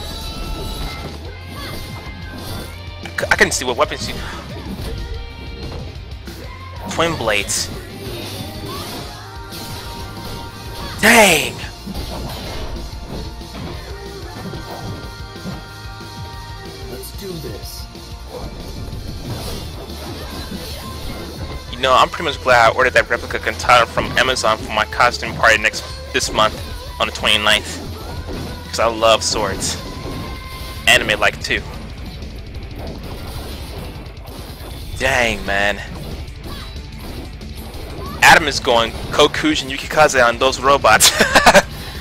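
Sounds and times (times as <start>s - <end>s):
dramatic trailer music: 0.0s - 42.0s.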